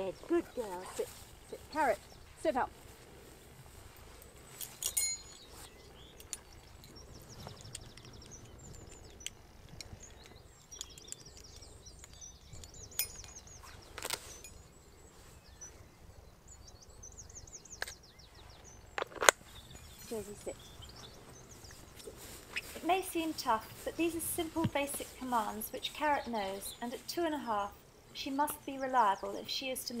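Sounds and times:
birds singing high trills: 3.8s - 30.0s.

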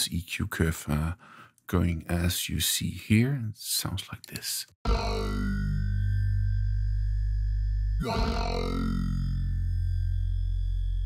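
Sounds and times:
synthesizer holding low note: 4.9s - 11.0s.

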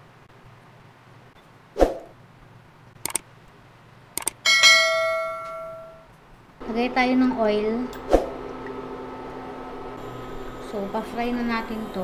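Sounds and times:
light clicks: 3.0s - 3.2s, 4.2s - 4.4s
notification bell ding: 4.5s - 6.0s.

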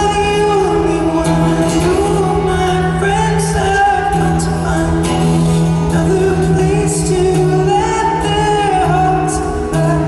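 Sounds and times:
acoustic guitar: 0.0s - 10.0s
man singing a ballad: 0.0s - 10.0s.

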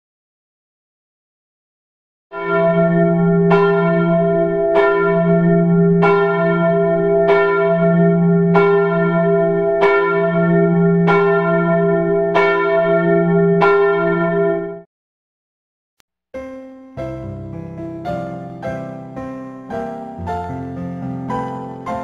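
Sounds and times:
church bell tolling: 2.4s - 14.9s, 16.6s - 22.0s.

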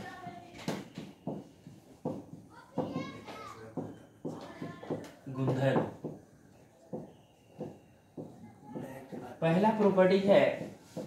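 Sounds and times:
children talking: 0.0s - 5.7s, 6.9s - 9.4s.

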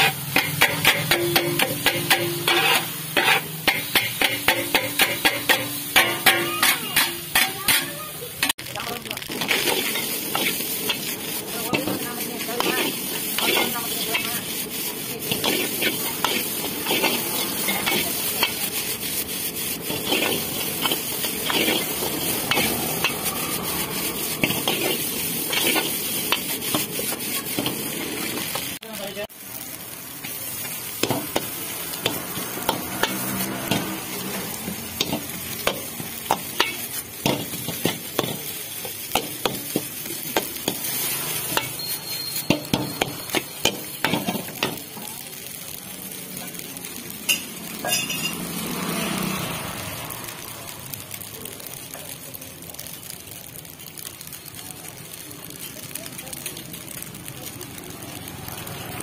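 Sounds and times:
metal ladle clacking on wok: 0.0s - 8.5s, 47.3s - 48.4s
noodles sizzling in wok: 0.0s - 59.0s.

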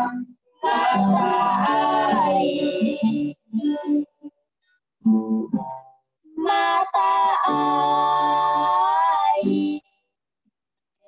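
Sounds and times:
people singing a hymn: 0.0s - 4.0s, 6.4s - 9.8s
acoustic guitar: 0.0s - 10.0s.

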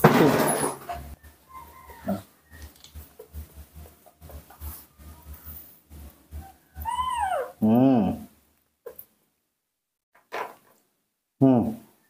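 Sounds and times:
baby monkey crying: 6.4s - 7.6s
baby monkey squeaking: 6.4s - 7.6s.

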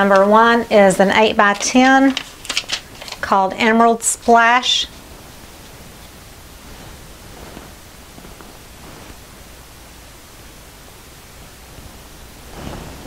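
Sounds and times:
steady background hiss: 0.0s - 13.0s
canvas rustling: 5.7s - 9.5s, 11.8s - 13.0s.

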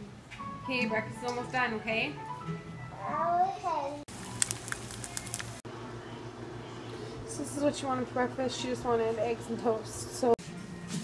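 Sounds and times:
eggs sizzling in a pan: 4.1s - 5.6s
fat popping and crackling: 4.1s - 5.6s.

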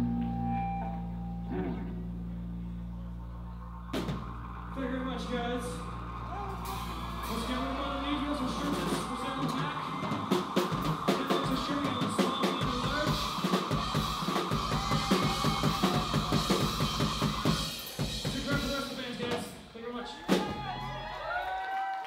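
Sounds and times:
rock band playing: 0.0s - 19.6s
drum kit with cymbals: 6.6s - 19.7s.

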